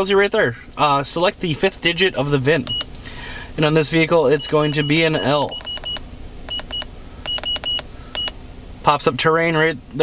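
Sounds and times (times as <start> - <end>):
short high electronic beeps: 4.4 - 8.4.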